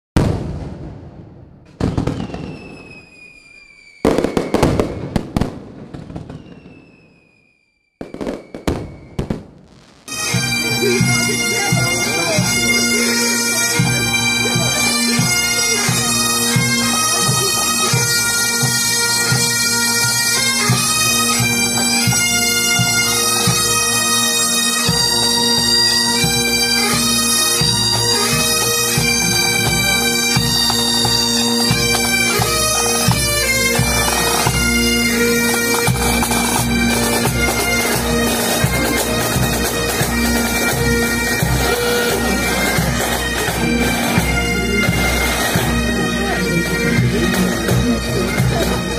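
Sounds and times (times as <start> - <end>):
bagpipes drone and melody: 10.1 - 48.9.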